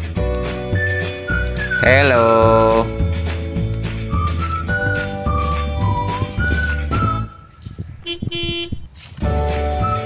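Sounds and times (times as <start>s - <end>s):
background music: 0.0s - 7.6s, 9.2s - 10.0s
toy horn beeping: 8.0s - 8.8s.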